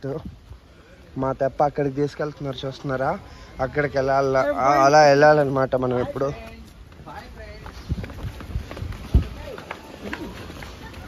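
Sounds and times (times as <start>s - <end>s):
people's voices: 0.0s - 11.0s
footsteps on concrete steps: 4.8s - 11.0s.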